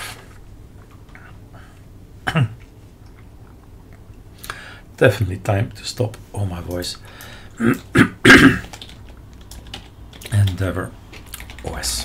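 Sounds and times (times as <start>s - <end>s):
person coughing: 2.2s - 2.6s, 7.6s - 8.7s
typing on computer keyboard: 8.6s - 12.0s.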